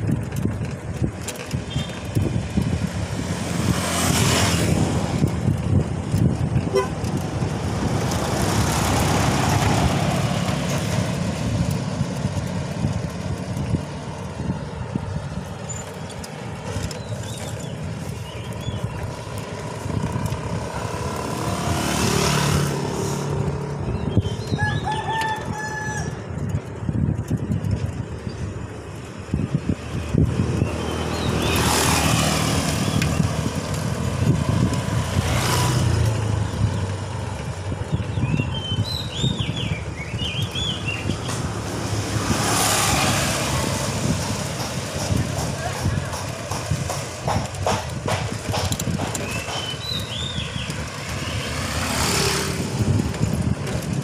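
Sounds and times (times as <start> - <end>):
vehicles passing: 0.0 - 54.0
wind and road noise rumble: 0.0 - 54.0
rooster crowing: 24.6 - 26.2.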